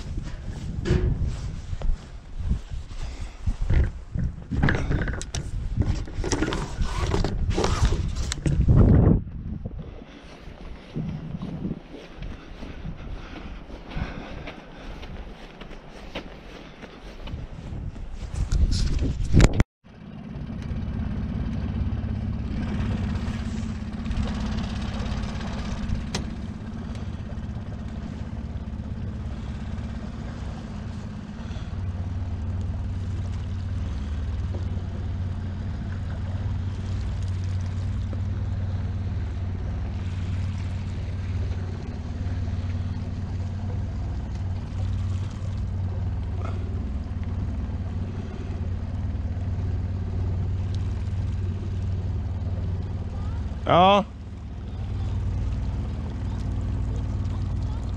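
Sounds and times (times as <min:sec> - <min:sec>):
outboard motor running: 0:00.0 - 0:18.0, 0:18.6 - 0:57.9.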